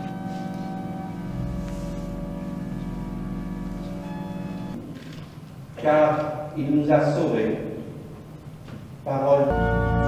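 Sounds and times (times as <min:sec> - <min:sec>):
church organ chords: 0:00.0 - 0:04.8, 0:09.4 - 0:10.0.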